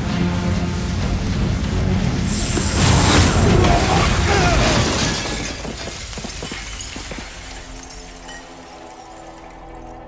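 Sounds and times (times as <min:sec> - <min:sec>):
glass window shattering: 0:02.8 - 0:09.4
glass pieces clinking: 0:04.6 - 0:10.0.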